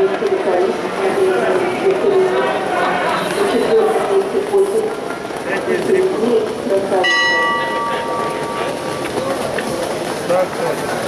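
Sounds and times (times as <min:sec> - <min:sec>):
bell ringing: 0:07.0 - 0:09.0.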